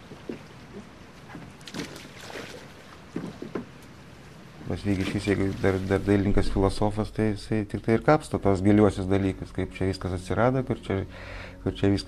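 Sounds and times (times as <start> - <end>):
low steady hiss: 0.0 - 12.0
wooden boat creaking: 2.9 - 4.0.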